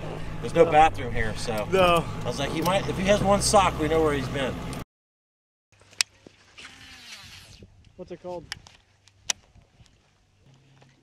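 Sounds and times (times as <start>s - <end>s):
fishing reel whirring: 6.6s - 7.6s.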